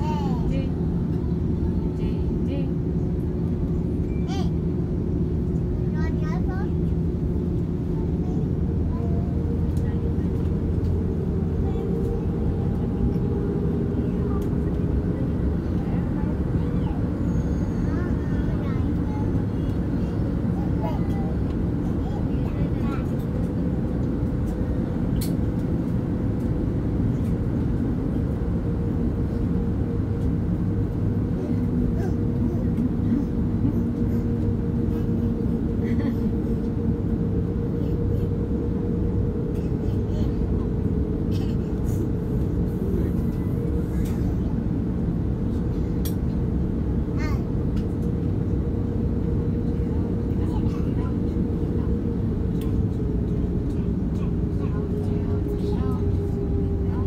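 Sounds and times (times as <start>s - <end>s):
aircraft cabin drone: 0.0s - 57.0s
constant hum tone: 0.0s - 57.0s.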